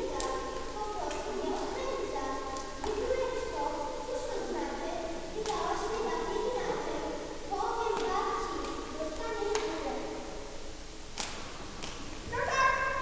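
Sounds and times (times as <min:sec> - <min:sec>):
children talking: 0:00.0 - 0:10.3, 0:12.3 - 0:13.0.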